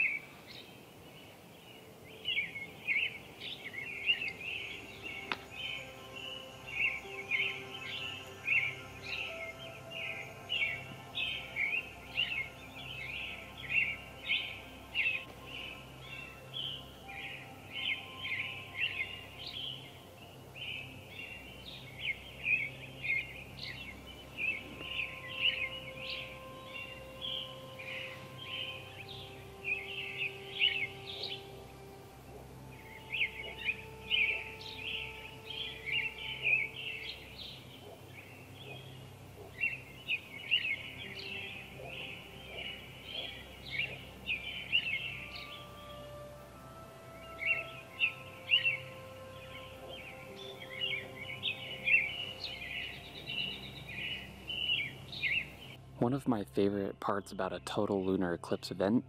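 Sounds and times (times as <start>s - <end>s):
birds chirping and singing: 0.0s - 59.0s.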